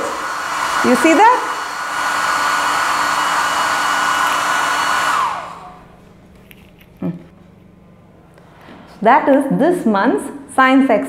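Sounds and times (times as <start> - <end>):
hair dryer blowing with whine: 0.0 - 6.1.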